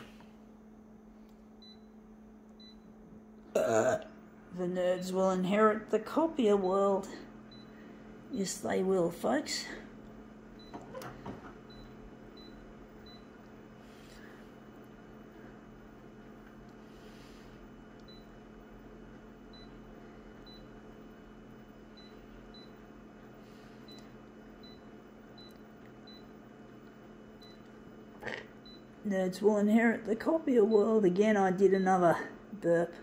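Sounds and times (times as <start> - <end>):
photocopier low hum: 0.0 - 33.0.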